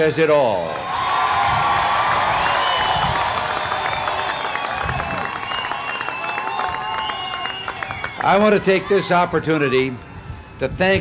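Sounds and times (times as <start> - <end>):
crowd cheering and applauding: 0.7 - 9.8.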